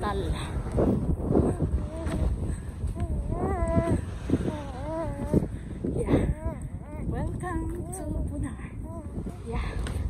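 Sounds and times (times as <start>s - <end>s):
wind rumble on microphone: 0.0s - 10.0s
small child's wavering vocal sounds: 1.4s - 8.0s, 8.7s - 9.4s.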